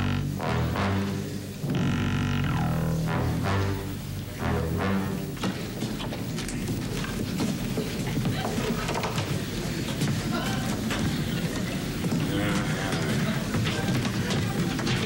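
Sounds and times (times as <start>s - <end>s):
low held music cue: 0.0s - 5.5s
audience laughter: 7.7s - 15.0s.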